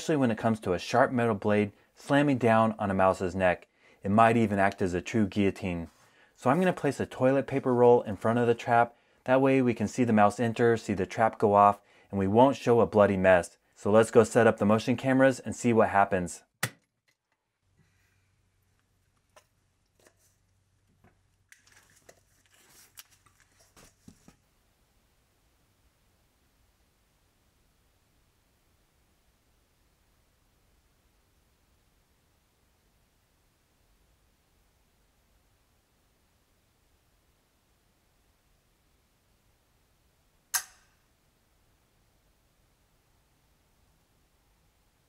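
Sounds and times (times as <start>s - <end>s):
rustling: 17.6s - 24.5s
mousetrap blade snapping: 40.6s - 41.0s.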